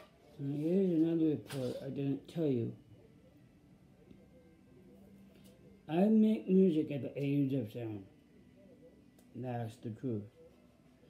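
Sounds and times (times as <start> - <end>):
faint steady low hum: 0.0 - 11.0.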